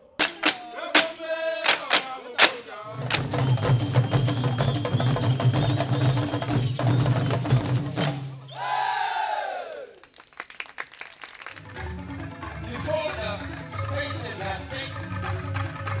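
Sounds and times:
fast drumming: 0.0 - 8.4.

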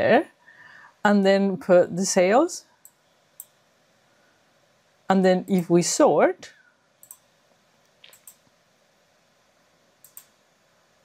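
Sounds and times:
computer mouse click: 2.8 - 3.6, 7.0 - 8.5, 10.0 - 10.4.

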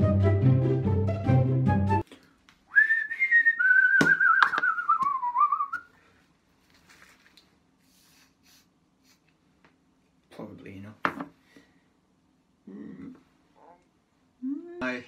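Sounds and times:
man whistling: 2.7 - 5.9
faint handling sounds: 6.0 - 9.8.

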